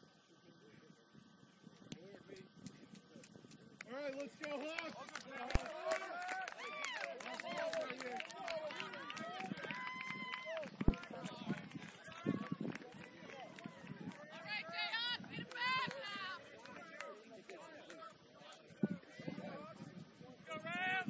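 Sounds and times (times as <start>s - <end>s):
crowd shouting and calling: 5.4s - 19.9s.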